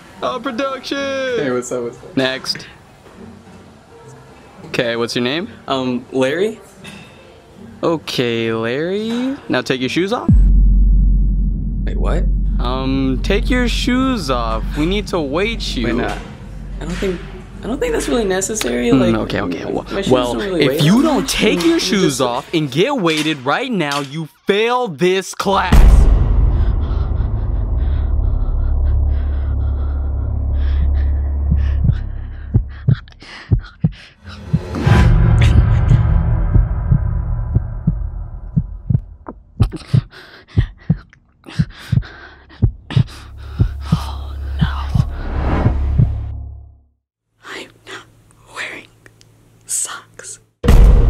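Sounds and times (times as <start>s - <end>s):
low thuds: 10.3s - 19.3s, 25.6s - 41.0s, 41.6s - 46.4s, 50.6s - 51.0s
faint low hum: 10.3s - 21.5s
low rumbling drone: 10.3s - 21.6s, 25.6s - 33.3s, 34.3s - 39.3s, 42.8s - 46.9s
man whispering breathily: 39.8s - 45.2s.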